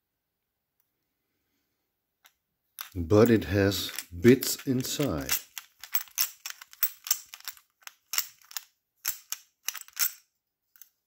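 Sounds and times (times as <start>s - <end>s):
screwdriver clicking and rattling: 3.9s - 10.2s.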